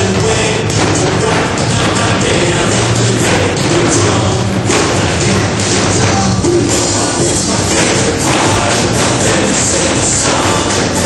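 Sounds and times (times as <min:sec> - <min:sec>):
large drums struck together: 0:00.0 - 0:11.0
music with steady beat: 0:00.0 - 0:11.0.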